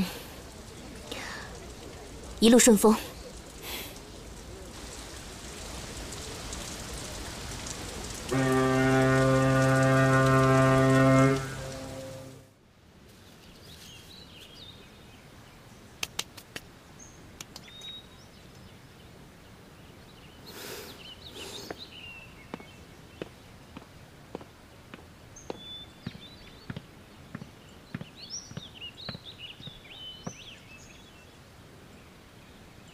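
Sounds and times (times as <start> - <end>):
outdoor ambience: 0.0 - 32.9
steady rain: 0.0 - 32.9
deep ship horn blast: 8.3 - 12.5
sharp clicks: 16.0 - 16.7, 17.4 - 17.9.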